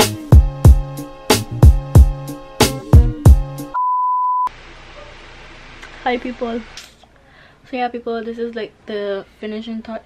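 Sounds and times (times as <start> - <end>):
test-tone beep: 3.8 - 4.5.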